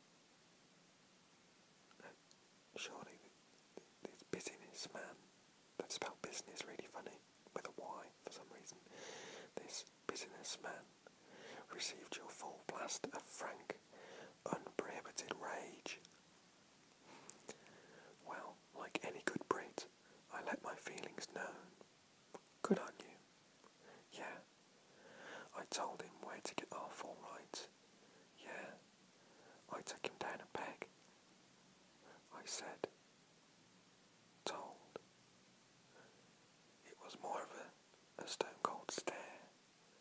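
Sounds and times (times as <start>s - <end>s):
man whispering: 1.9s - 5.2s, 5.8s - 8.9s, 9.5s - 16.2s, 17.1s - 23.2s, 23.8s - 24.5s, 25.2s - 27.7s, 28.3s - 28.8s, 29.4s - 31.0s, 32.0s - 33.0s, 34.4s - 35.0s, 36.8s - 39.6s.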